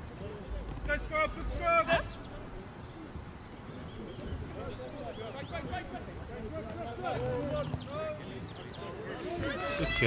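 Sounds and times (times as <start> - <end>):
distant players calling: 0.0 - 10.0.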